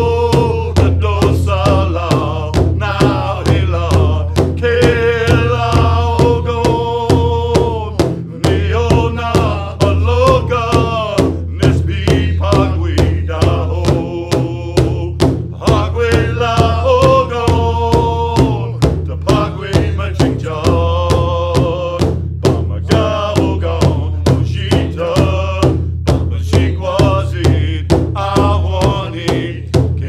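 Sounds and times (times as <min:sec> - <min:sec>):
large hand drum beating: 0:00.0 - 0:30.0
voices singing in unison: 0:00.0 - 0:30.0.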